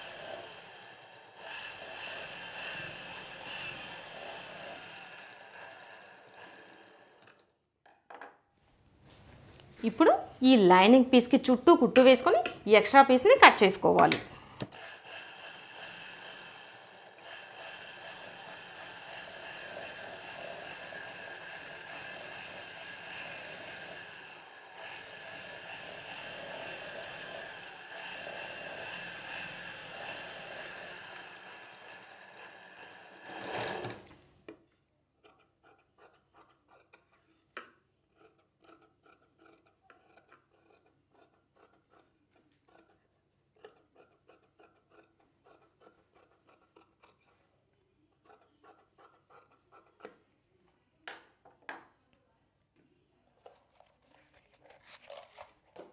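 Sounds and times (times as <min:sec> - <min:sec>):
sewing machine running: 0:00.0 - 0:07.6, 0:14.7 - 0:34.2
scissor snips: 0:38.1 - 0:43.0, 0:43.6 - 0:47.4, 0:48.2 - 0:50.2.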